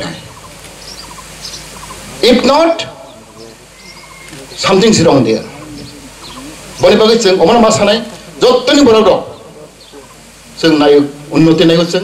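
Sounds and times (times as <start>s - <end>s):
bird chattering calls: 0.0s - 10.6s
steady background hiss: 0.0s - 12.0s.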